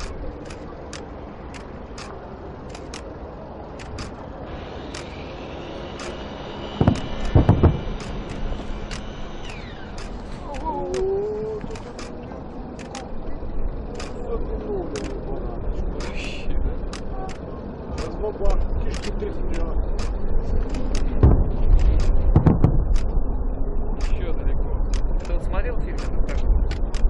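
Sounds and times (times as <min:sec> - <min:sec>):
heavy fireworks booms: 0:06.8 - 0:08.3, 0:21.2 - 0:23.0
distant fireworks bangs and crackles: 0:06.8 - 0:08.5, 0:21.2 - 0:23.1.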